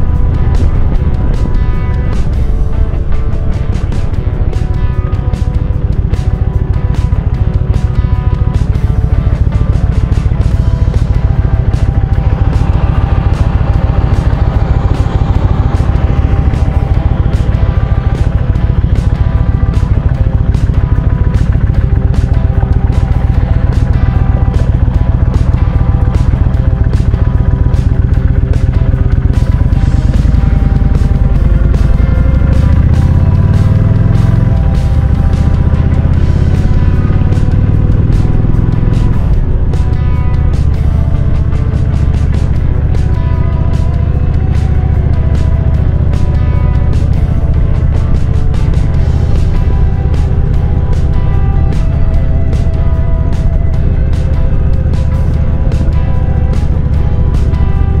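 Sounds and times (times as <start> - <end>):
background music: 0.0 - 58.0
motorcycle accelerating through gears: 0.0 - 58.0
motorcycle engine idling: 0.0 - 58.0.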